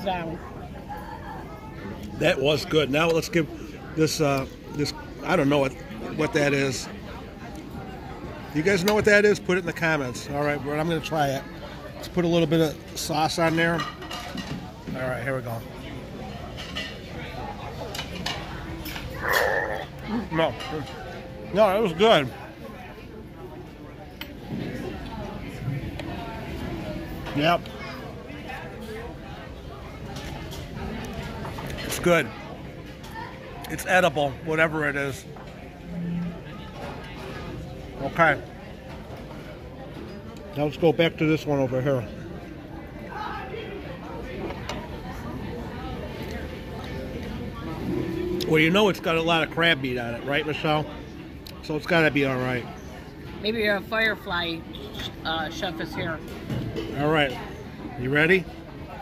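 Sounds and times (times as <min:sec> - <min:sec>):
murmur of diners' voices: 0:00.0 - 0:59.0.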